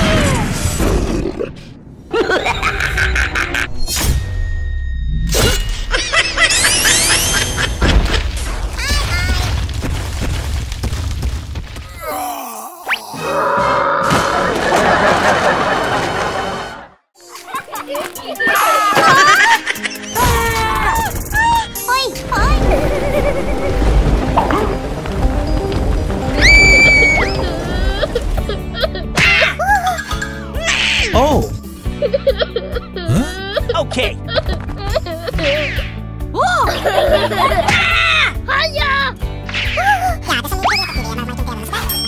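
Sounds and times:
cartoon background music: 5.3s - 9.4s, 17.2s - 42.0s.

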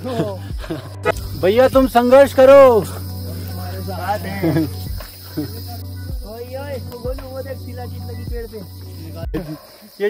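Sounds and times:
men laughing: 0.0s - 6.0s, 9.0s - 10.0s
insects chirring: 0.0s - 10.0s
men's voices: 0.0s - 10.0s.

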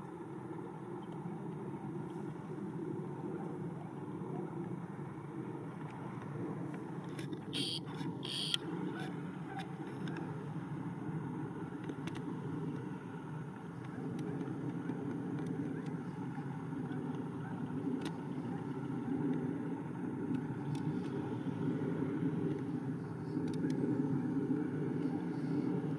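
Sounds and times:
distant jet engines rumbling: 0.0s - 25.9s.

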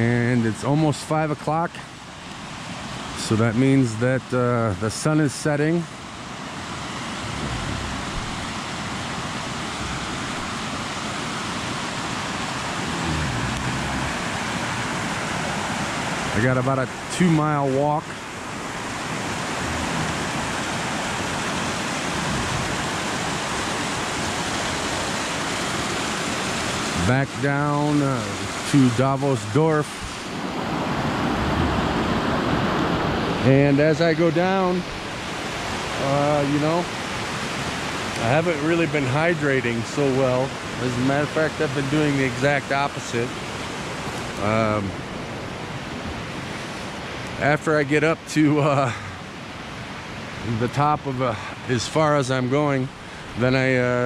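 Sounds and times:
stream rushing over rocks: 0.0s - 54.0s.

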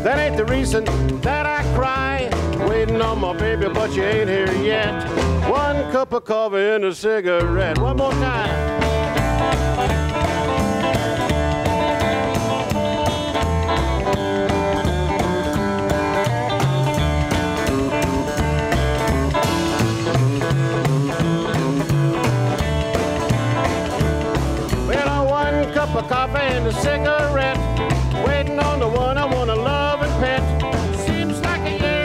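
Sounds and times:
electric guitar: 0.0s - 5.9s, 7.4s - 32.0s
upright bass notes: 0.0s - 6.0s, 7.3s - 32.0s
person singing: 0.0s - 8.7s, 24.9s - 32.0s
steady beat: 7.5s - 32.0s
strummed acoustic guitar: 7.6s - 32.0s.

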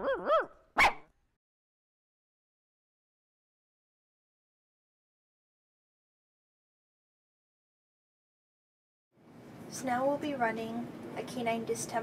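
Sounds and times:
dog barking sharply: 0.0s - 1.1s
dog whining yelps: 0.0s - 1.1s.

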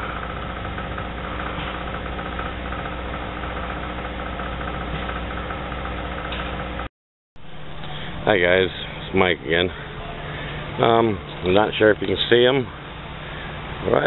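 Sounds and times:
small engine idling: 0.0s - 14.0s.

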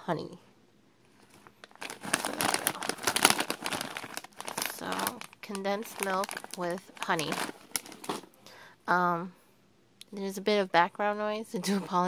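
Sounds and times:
plastic snack bag crinkling: 1.2s - 8.3s.

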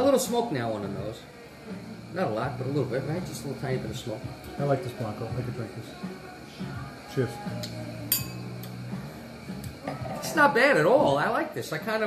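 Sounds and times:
glasses clinking: 8.1s - 8.8s.

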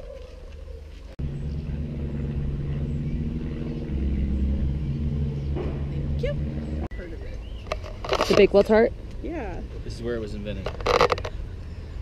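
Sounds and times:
steady low hum: 1.0s - 8.0s
deep rumble: 1.2s - 12.0s.

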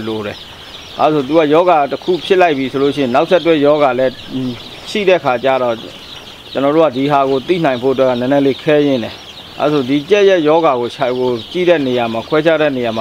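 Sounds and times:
man talking: 0.0s - 0.4s, 1.0s - 6.0s, 6.6s - 13.0s
chicks cheeping: 0.0s - 13.0s.

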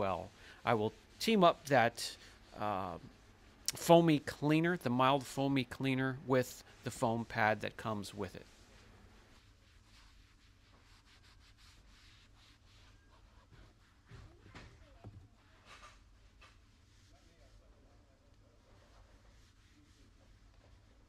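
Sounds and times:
foam pad rubbing panel: 6.9s - 21.0s.

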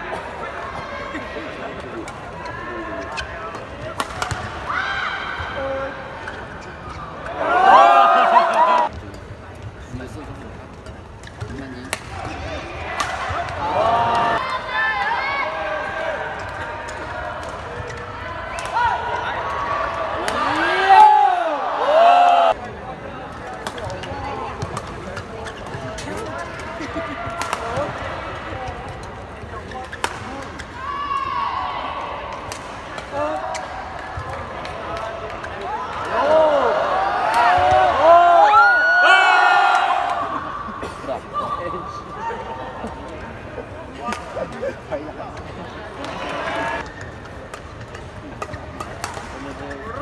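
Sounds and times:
arena crowd noise: 0.0s - 50.0s
shoes squeaking on court: 6.2s - 7.4s, 24.6s - 26.4s.

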